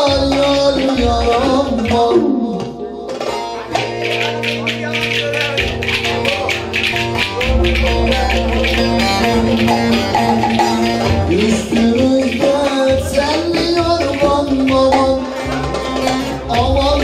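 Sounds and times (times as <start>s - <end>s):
saz playing folk tune: 0.0s - 17.0s.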